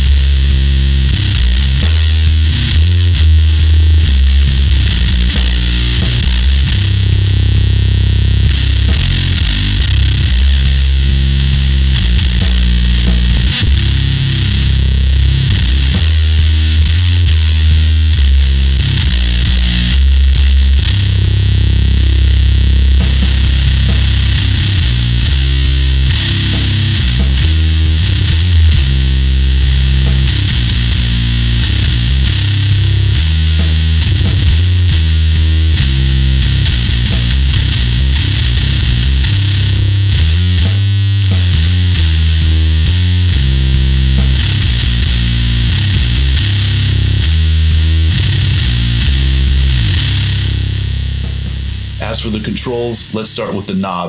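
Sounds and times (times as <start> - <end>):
fuzz distorted bass guitar riffs: 0.0 - 54.0.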